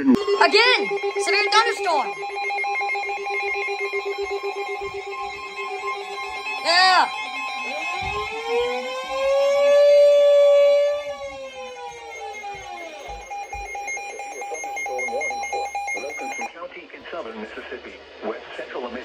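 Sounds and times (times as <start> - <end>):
siren-like rising and falling tone: 0.0 - 16.5
steady alarm tones: 0.0 - 16.5.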